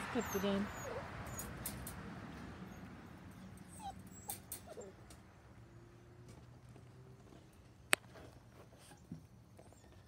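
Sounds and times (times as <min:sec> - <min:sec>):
puppies whimpering and yipping: 0:00.0 - 0:01.6, 0:02.7 - 0:05.0.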